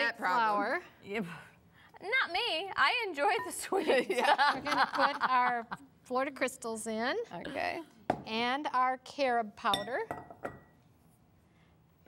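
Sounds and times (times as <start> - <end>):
glass cup clinking on bowl: 9.7 - 10.7.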